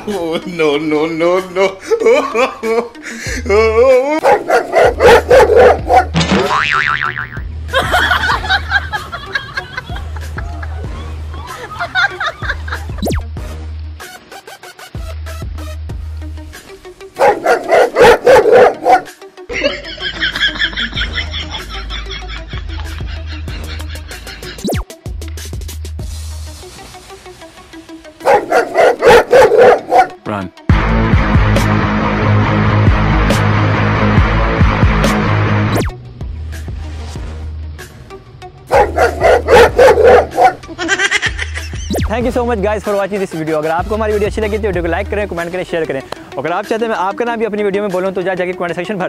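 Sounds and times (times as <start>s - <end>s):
background music with bass drone: 0.0s - 14.2s, 15.0s - 49.0s
angry dog barking: 4.2s - 6.2s, 17.2s - 19.1s, 28.2s - 30.2s, 38.7s - 40.6s.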